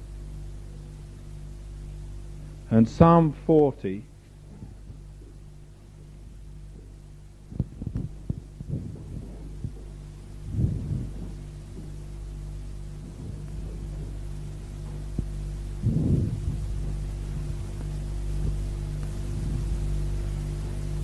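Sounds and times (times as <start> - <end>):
electrical hum of tape recording: 0.0 - 21.0
low thumps: 4.4 - 21.0.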